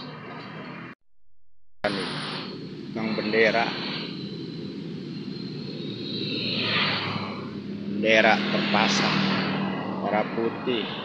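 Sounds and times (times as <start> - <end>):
passing vehicles rushing: 1.9 - 11.0.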